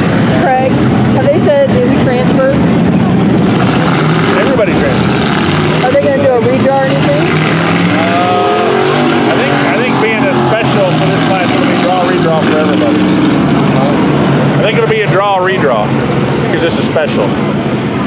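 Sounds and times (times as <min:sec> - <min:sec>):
race car engines revving: 0:00.0 - 0:18.0.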